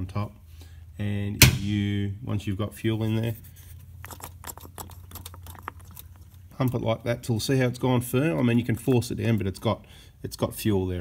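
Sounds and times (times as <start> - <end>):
steady low hum: 0.0 - 8.1.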